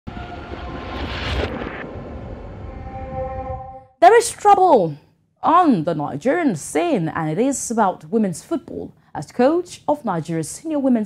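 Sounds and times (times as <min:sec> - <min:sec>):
rushing whoosh: 0:00.0 - 0:04.0.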